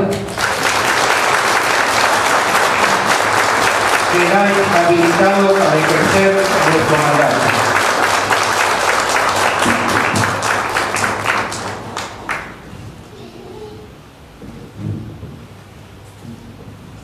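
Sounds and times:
audience applauding: 0.0s - 12.6s.

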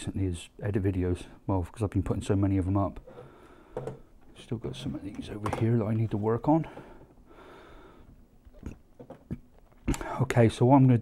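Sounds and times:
soft breath through nose: 6.7s - 8.2s.

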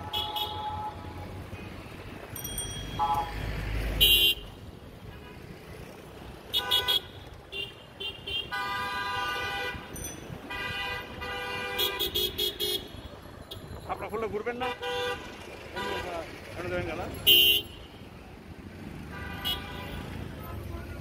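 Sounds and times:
vehicle horns honking: 0.0s - 2.0s, 2.9s - 3.4s, 4.0s - 5.5s, 6.5s - 13.7s, 14.5s - 16.2s, 17.1s - 18.1s, 19.0s - 20.3s
steady traffic noise: 0.0s - 21.0s.

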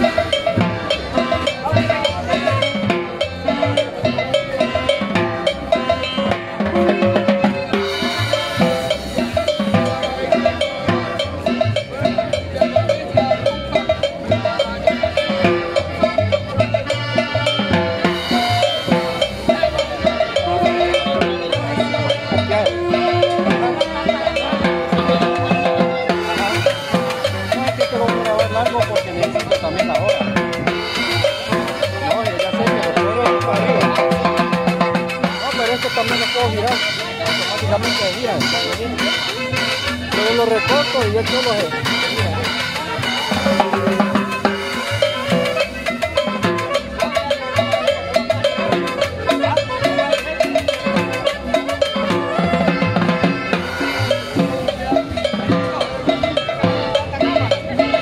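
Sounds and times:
cowbell: 0.0s - 58.0s
latin dance music: 0.0s - 58.0s
timbales and drums: 0.0s - 58.0s.

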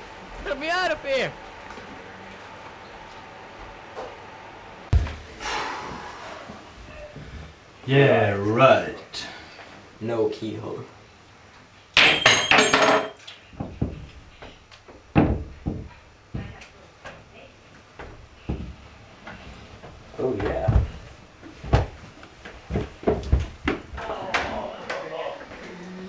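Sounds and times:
footsteps going down stairs: 17.8s - 23.9s.

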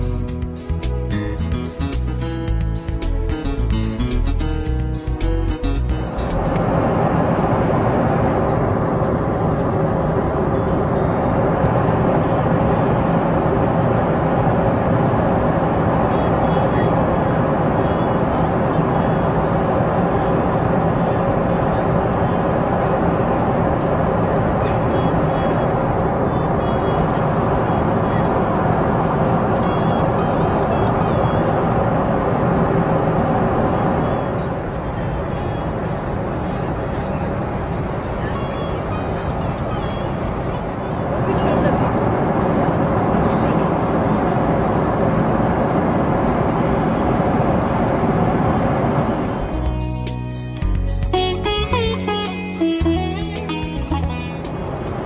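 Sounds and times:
guitar music: 0.0s - 41.7s, 49.3s - 55.0s
air rushing past fuselage: 0.0s - 53.0s
aircraft engines humming: 0.0s - 55.0s
steady tones: 0.0s - 55.0s.

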